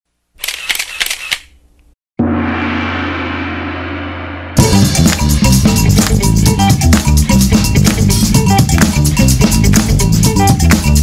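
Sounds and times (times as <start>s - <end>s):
camera shutter clicks: 0.4s - 1.6s.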